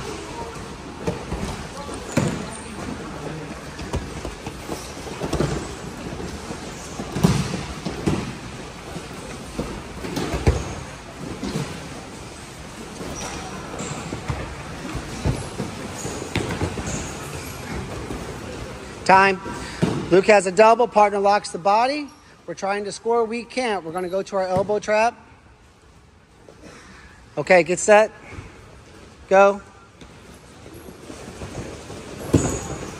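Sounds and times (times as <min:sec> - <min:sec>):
bodies thudding on mats: 0:03.7 - 0:18.5, 0:31.0 - 0:32.9.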